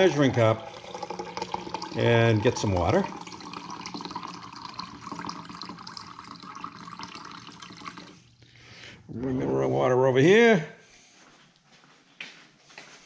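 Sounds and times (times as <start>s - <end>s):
water trickling into cup: 0.0s - 8.5s.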